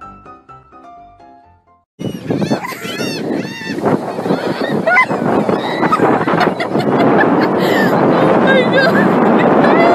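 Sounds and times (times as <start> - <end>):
piano music: 0.0 - 1.8
gulls calling: 2.0 - 9.9
wind and waves rushing: 2.0 - 9.9.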